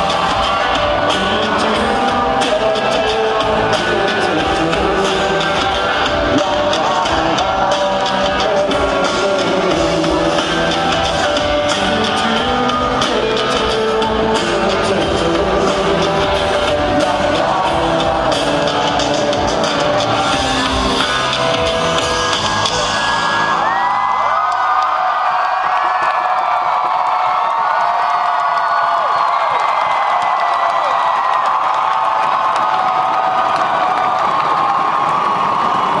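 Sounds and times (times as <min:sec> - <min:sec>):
rock band playing live: 0:00.0 - 0:23.7
crowd cheering and yelling: 0:00.0 - 0:36.0.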